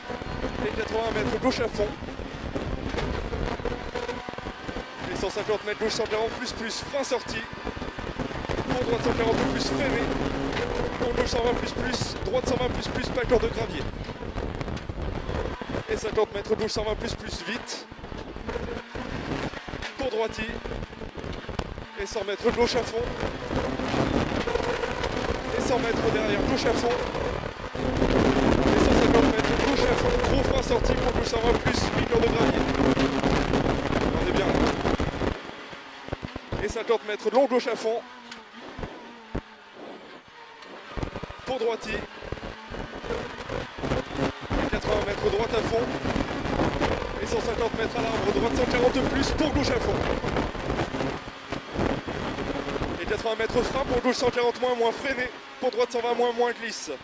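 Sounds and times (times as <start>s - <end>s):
car engine at full throttle: 0.0s - 57.0s
road and wind noise: 0.0s - 57.0s
car engine from inside cabin: 7.5s - 11.2s.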